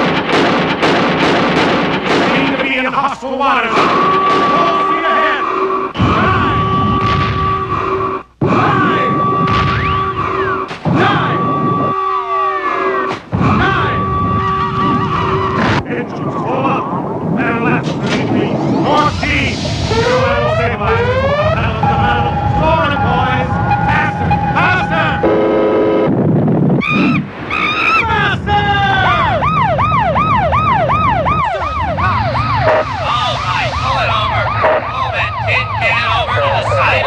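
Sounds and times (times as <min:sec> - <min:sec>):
whooping alarm: 0:03.7 - 0:17.7, 0:18.4 - 0:26.2, 0:26.8 - 0:37.0
electronic beeps: 0:09.0 - 0:12.3, 0:18.5 - 0:26.1
low rumble: 0:13.3 - 0:37.0
electronic rising sweeps: 0:18.3 - 0:26.1, 0:29.5 - 0:37.0.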